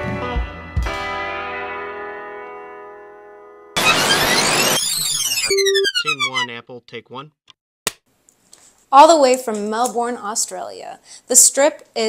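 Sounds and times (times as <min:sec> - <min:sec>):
glitchy noise burst: 0:03.8 - 0:06.5.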